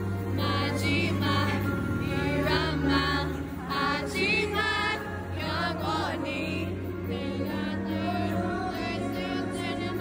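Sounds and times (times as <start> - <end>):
backing music with low notes: 0.0 - 10.0
person singing live: 0.0 - 10.0.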